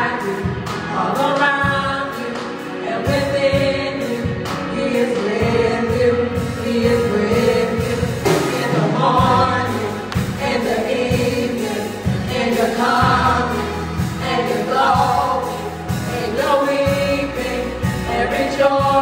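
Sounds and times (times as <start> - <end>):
gospel group singing: 0.0 - 19.0
instrumental accompaniment with beat: 0.0 - 19.0.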